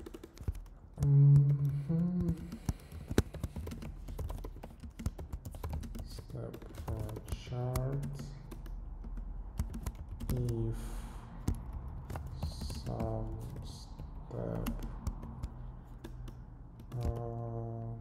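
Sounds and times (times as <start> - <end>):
keyboard typing: 0.0 - 18.0.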